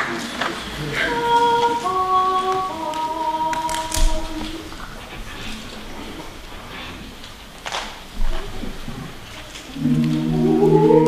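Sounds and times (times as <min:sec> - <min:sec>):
mixed choir singing a cappella: 0:00.8 - 0:05.3, 0:09.7 - 0:11.0.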